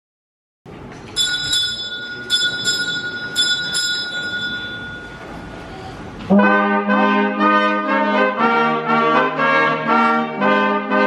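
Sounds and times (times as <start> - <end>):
small bell ringing: 1.2 - 6.0.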